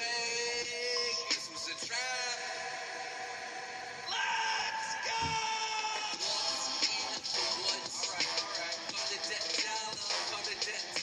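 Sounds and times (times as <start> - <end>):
music: 0.0 - 11.0
man singing yelled notes: 4.1 - 6.5.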